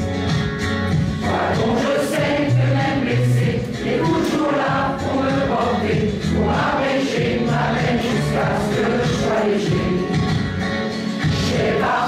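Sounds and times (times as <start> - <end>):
choir singing held notes: 1.2 - 10.5, 11.1 - 12.0.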